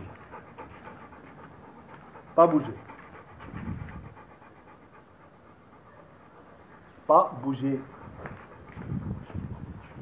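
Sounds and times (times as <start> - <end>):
dog panting: 0.0 - 10.0
low dog rumble: 0.0 - 10.0.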